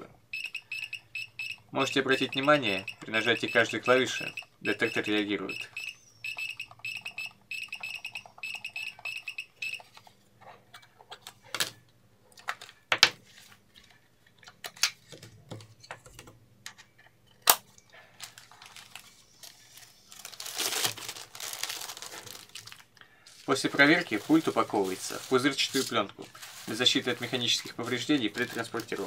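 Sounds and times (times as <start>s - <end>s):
rapid short beeps: 2.2s - 9.8s
plastic film crinkling: 18.1s - 29.0s.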